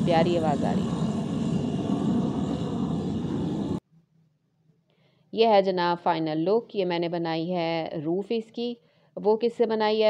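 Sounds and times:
jet aircraft flying overhead: 0.0s - 3.8s.

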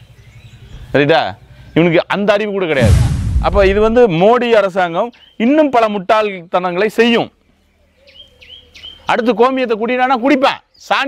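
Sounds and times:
bird chirping: 0.0s - 2.1s, 7.4s - 9.4s
man speaking: 2.7s - 4.4s.

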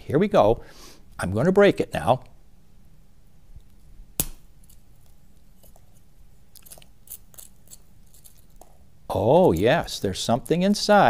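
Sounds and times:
shell snapping: 3.6s - 5.2s
broken shell pieces crackling: 6.5s - 9.8s.

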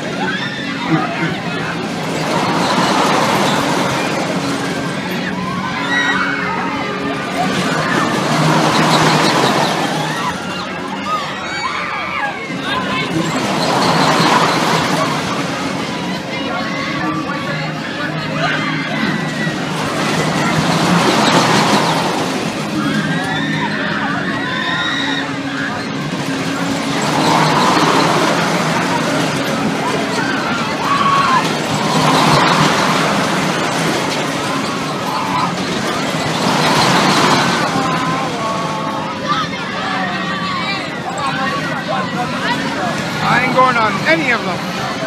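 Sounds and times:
low machinery hum: 0.0s - 45.0s.

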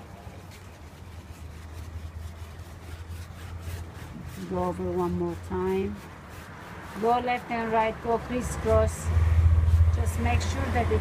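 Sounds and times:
brush scratching on canvas: 0.0s - 11.0s.

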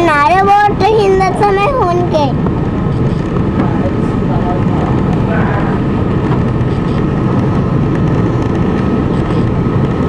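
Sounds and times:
ferry engines droning: 0.0s - 10.0s.

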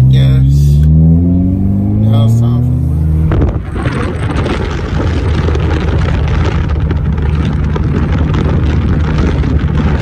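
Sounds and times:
car engine revving: 0.0s - 10.0s
wind rushing on microphone: 2.6s - 10.0s.

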